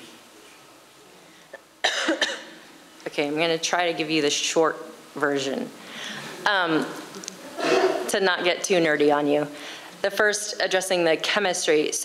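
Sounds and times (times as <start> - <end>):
woman coughing: 1.8 - 2.5, 7.6 - 8.1.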